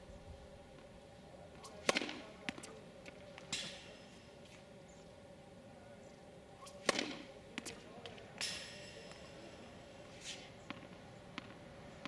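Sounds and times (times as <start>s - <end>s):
faint steady hum: 0.0s - 12.0s
tennis racket hitting ball: 1.6s - 2.7s, 6.6s - 9.3s.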